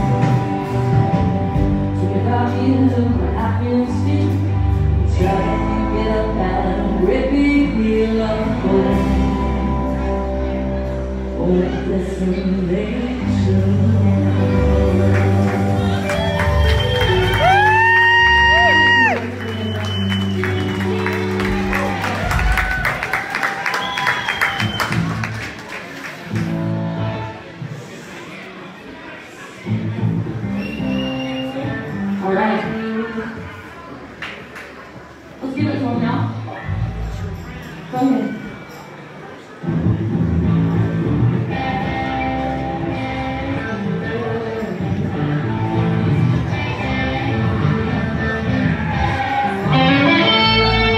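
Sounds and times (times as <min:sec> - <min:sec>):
live country band playing: 0:00.0 - 0:28.2, 0:29.6 - 0:33.8, 0:35.8 - 0:50.9
audience clapping and cheering: 0:15.0 - 0:26.8.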